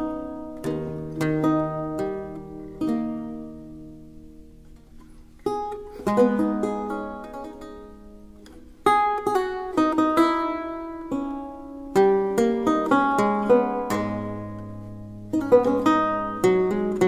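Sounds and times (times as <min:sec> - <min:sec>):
solo lute playing: 0:00.0 - 0:17.0.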